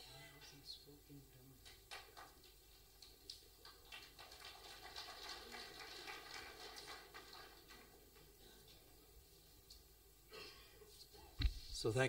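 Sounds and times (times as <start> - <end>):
audience applause: 1.7 - 8.6.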